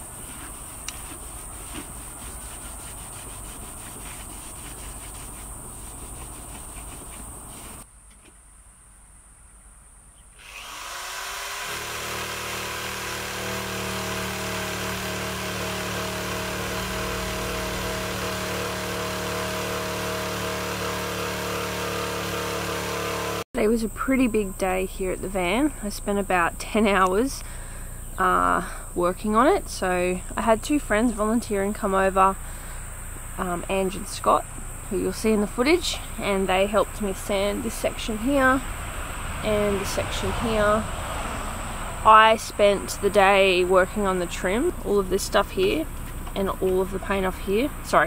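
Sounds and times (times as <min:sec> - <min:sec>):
soft rubbing and handling: 0:00.0 - 0:07.8
drill with wire brush stripping metal: 0:10.4 - 0:23.4.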